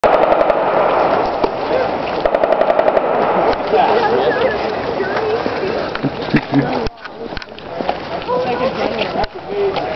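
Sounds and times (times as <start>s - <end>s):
machine gun bursts: 0.0s - 0.8s, 2.2s - 3.6s
voices talking: 0.4s - 9.9s.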